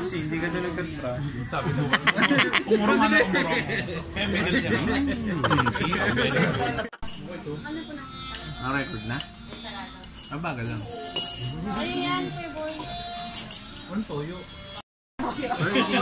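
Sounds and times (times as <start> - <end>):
background music: 0.0 - 16.0
indistinct voices: 1.2 - 14.0
spoons clinking against bowls: 7.0 - 7.3, 10.0 - 11.7, 13.2 - 13.9.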